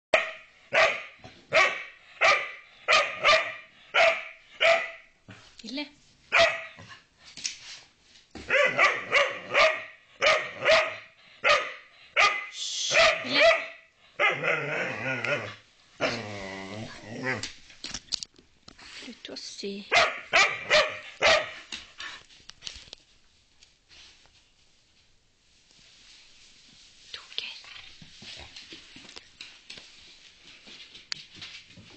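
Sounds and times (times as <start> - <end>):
dog barking: 0.1 - 5.1, 6.3 - 6.8, 8.5 - 14.6, 19.9 - 21.7
dog growly barks: 8.5 - 11.6, 13.0 - 17.5.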